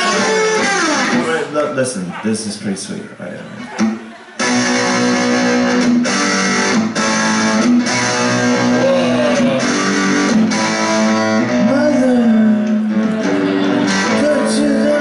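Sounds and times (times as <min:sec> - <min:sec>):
electric guitar chords and notes: 0:00.0 - 0:01.6, 0:03.8 - 0:15.0.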